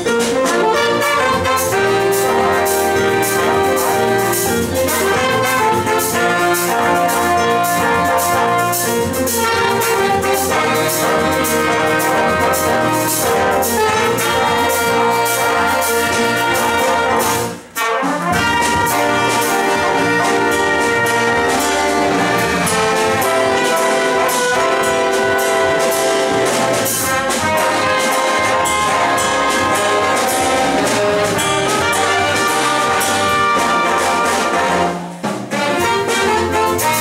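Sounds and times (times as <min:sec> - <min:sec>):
jazz big band playing: 0:00.0 - 0:37.0.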